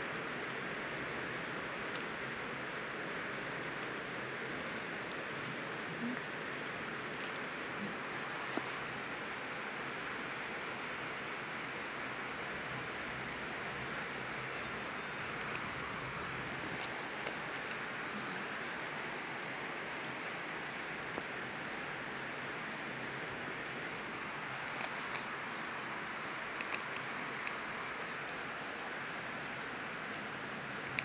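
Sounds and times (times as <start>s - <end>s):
steady background hiss: 0.0s - 31.0s.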